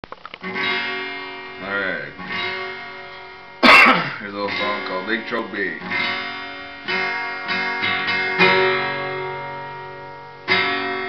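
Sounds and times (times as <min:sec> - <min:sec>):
acoustic guitar strummed: 0:00.3 - 0:11.0.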